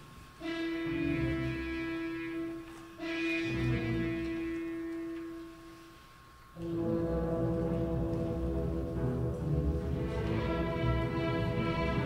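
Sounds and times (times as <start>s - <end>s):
orchestra sustained full chord: 0.3s - 12.0s.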